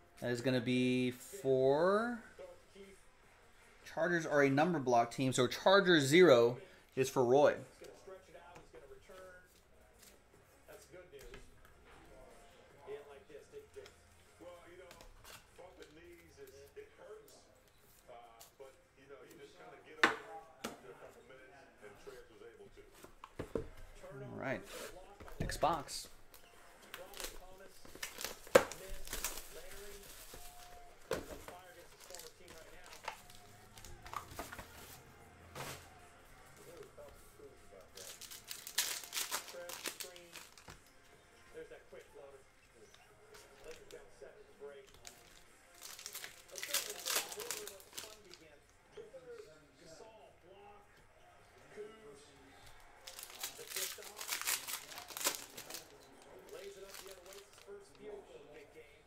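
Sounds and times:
faint talk or music: 0:00.0 - 0:59.0
plastic wrapping crinkling and tearing: 0:26.8 - 0:35.0, 0:37.7 - 0:40.8, 0:44.9 - 0:48.4, 0:52.9 - 0:57.9.

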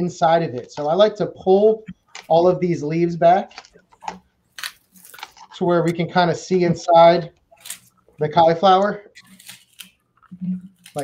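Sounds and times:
cauliflower leaves snapping: 0:03.5 - 0:05.6, 0:09.2 - 0:10.0, 0:10.7 - 0:11.0.

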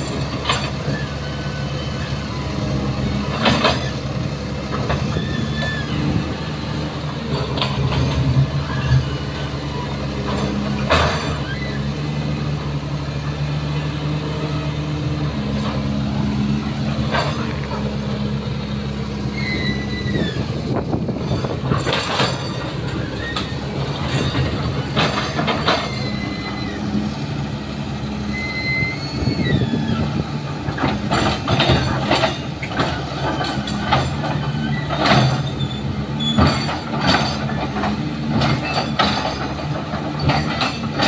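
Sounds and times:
excavator diesel engine: 0:00.0 - 0:41.0
short high squeals: 0:04.9 - 0:06.2, 0:11.1 - 0:12.2, 0:19.1 - 0:27.1, 0:28.1 - 0:30.2, 0:34.4 - 0:36.7.

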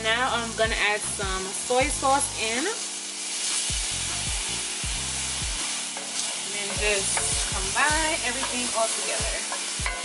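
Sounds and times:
chicken sizzling in a skillet: 0:00.0 - 0:10.0
wooden spoon scraping a pan: 0:02.8 - 0:04.0, 0:05.2 - 0:10.0.

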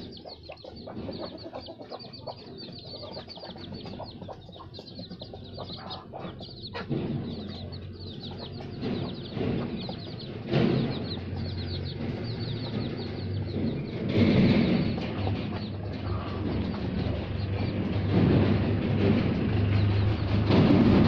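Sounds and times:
chicks peeping: 0:00.0 - 0:21.0
steady low hum: 0:00.0 - 0:21.0.

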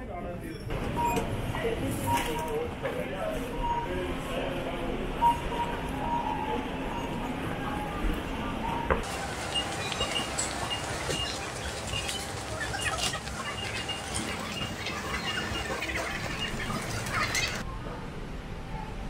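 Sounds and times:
murmur of voices: 0:01.4 - 0:08.9
shopping trolley rolling and rattling: 0:09.0 - 0:17.6.

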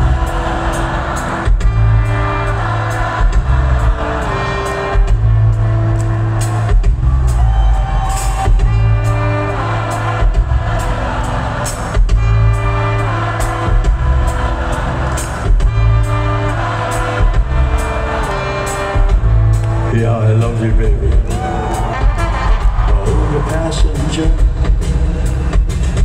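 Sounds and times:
live rock band playing: 0:00.0 - 0:19.9, 0:20.8 - 0:26.0
trombone and trumpet: 0:21.6 - 0:23.5.

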